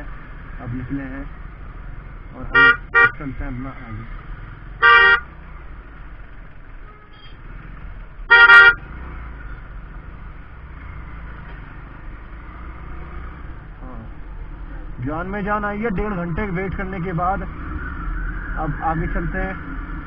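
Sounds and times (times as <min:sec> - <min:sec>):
vehicle horn beeping: 0:02.5 - 0:03.2, 0:04.8 - 0:05.3, 0:06.8 - 0:07.4, 0:08.3 - 0:08.8.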